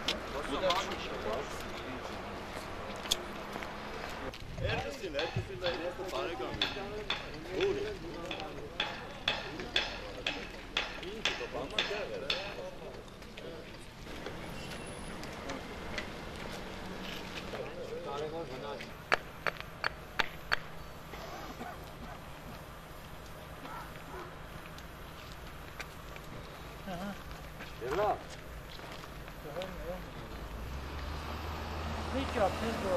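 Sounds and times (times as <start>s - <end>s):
people talking: 0.1s - 2.2s, 3.8s - 13.7s, 32.1s - 32.9s.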